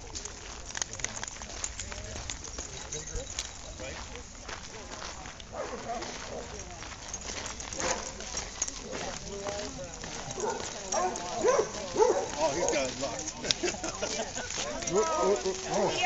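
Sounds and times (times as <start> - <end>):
people talking indistinctly: 0.0 - 16.0.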